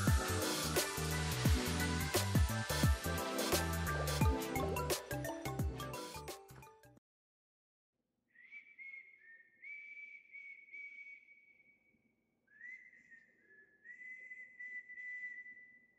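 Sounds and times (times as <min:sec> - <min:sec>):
faint whistling: 0:08.3 - 0:15.9.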